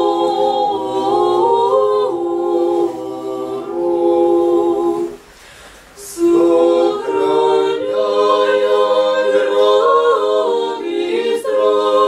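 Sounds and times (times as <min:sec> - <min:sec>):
mixed choir chanting: 0:00.0 - 0:05.3, 0:06.0 - 0:12.0
short hiss: 0:04.9 - 0:06.2.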